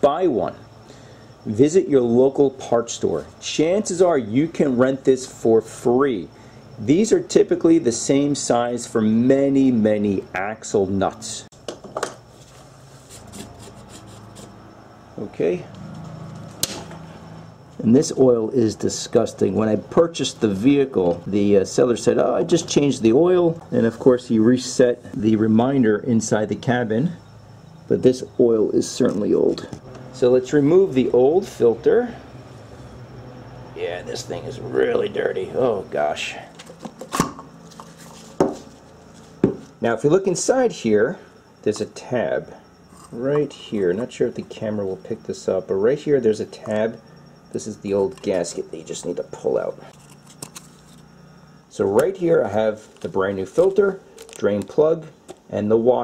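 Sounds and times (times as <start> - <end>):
low steady hum: 0.0 - 56.0
metal tool scraping and clicking: 42.9 - 43.5, 49.9 - 51.0.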